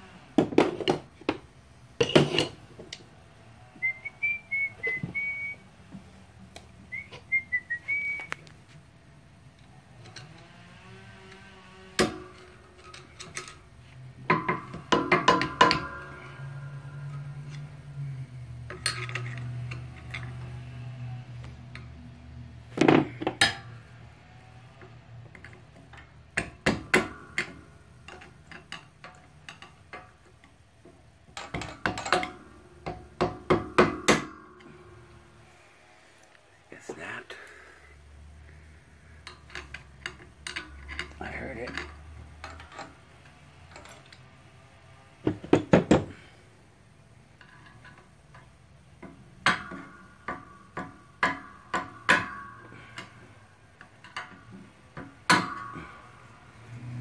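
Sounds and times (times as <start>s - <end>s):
person whistling a tune: 3.8s - 5.6s, 6.9s - 8.4s.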